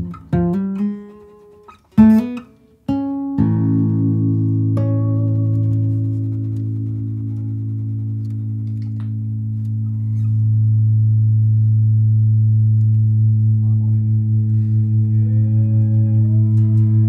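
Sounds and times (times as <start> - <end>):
higher notes sliding upward: 3.4 - 10.8, 12.8 - 17.0
low bass note: 3.4 - 17.0.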